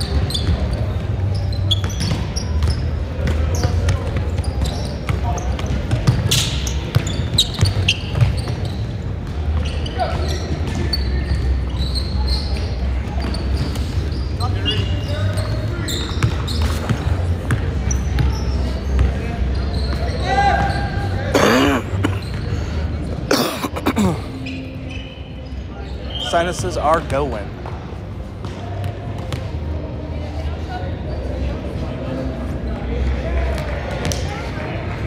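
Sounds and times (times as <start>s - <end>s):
balls bouncing and being hit: 0.0s - 20.8s, 26.5s - 29.8s, 33.5s - 34.5s
distant voices and shouts: 17.8s - 21.3s.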